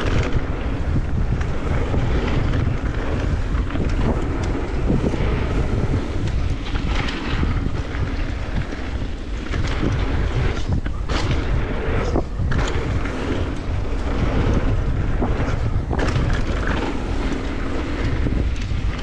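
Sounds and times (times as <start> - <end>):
bike rattles and clicks: 0.0 - 19.0
tyres rolling on dirt: 0.0 - 19.0
wind buffeting microphone: 0.0 - 19.0.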